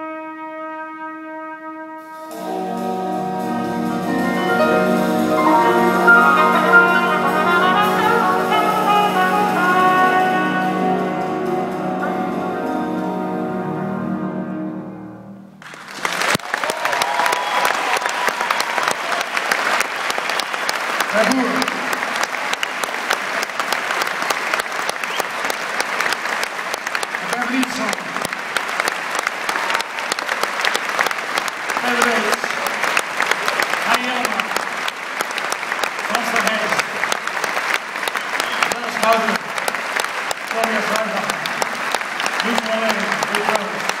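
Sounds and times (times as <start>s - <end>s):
audience applauding: 3.4s - 10.9s, 15.6s - 44.0s.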